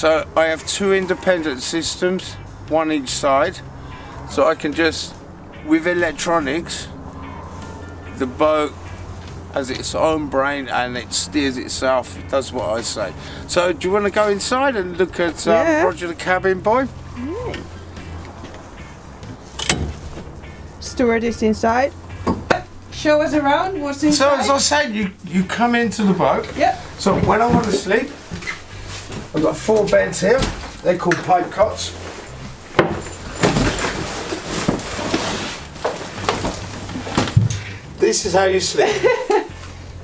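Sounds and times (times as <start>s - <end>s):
clothing rustling: 26.8s - 37.7s.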